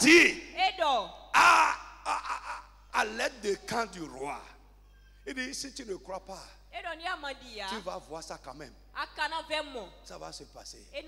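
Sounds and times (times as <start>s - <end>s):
rough shouted exclamation: 1.3s - 2.7s.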